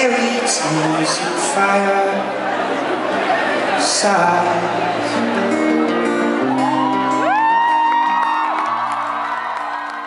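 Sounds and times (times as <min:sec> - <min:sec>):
acoustic guitar chords ringing: 0:03.8 - 0:09.0
audience whooping: 0:05.2 - 0:10.0.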